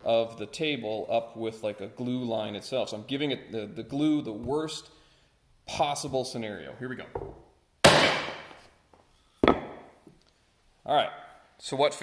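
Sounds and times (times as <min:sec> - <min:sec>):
mallet striking wooden board: 0:09.4 - 0:09.9.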